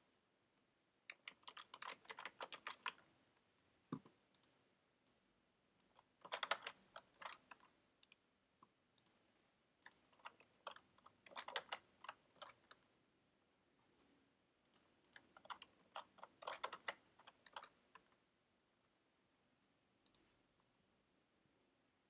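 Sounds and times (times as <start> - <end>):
typing on computer keyboard: 1.1 - 3.0, 5.8 - 7.7, 9.8 - 12.8, 14.7 - 18.1.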